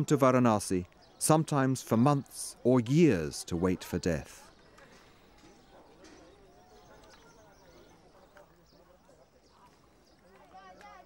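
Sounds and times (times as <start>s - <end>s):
distant voices talking: 0.0s - 11.0s.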